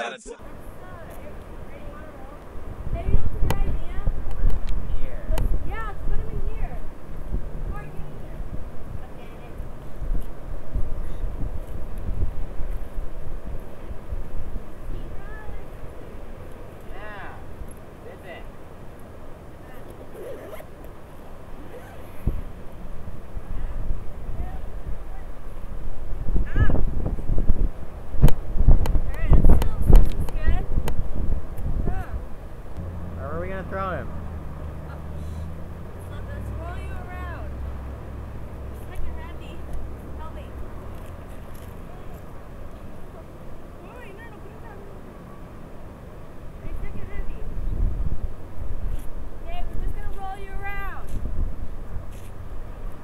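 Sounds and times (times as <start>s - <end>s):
low rumble on microphone: 1.5s - 16.4s, 21.3s - 43.0s
suitcase zipper pulls: 19.8s - 20.7s
faint voices: 21.5s - 22.5s, 38.6s - 45.8s.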